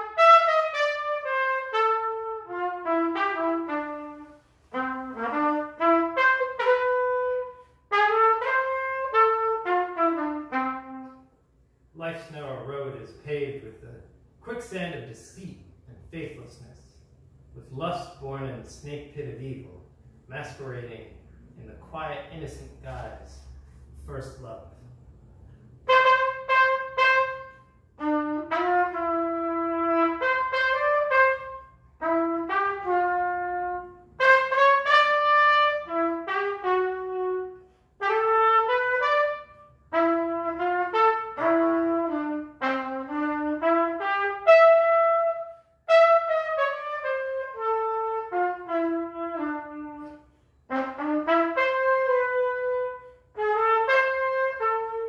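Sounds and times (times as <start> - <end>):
solo trumpet melody: 0.0 - 13.8, 25.5 - 55.0.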